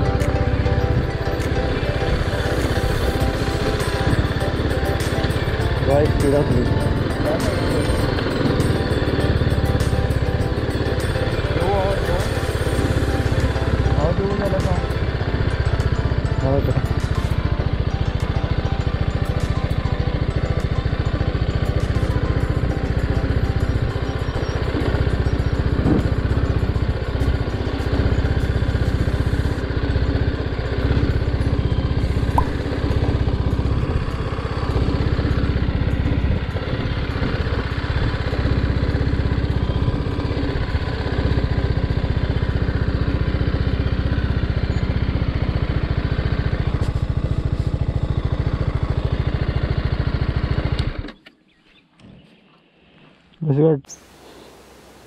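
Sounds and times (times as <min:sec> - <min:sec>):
background music: 0:00.0 - 0:43.2
motorcycle engine running: 0:00.0 - 0:52.3.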